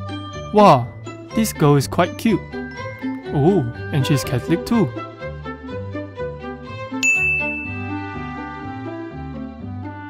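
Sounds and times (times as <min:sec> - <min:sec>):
bright bell-like ding: 0:07.0 - 0:08.4.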